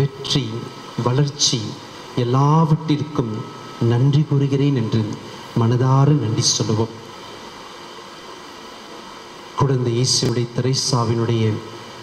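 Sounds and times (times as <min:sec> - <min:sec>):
room noise hiss and hum: 0:00.0 - 0:12.0.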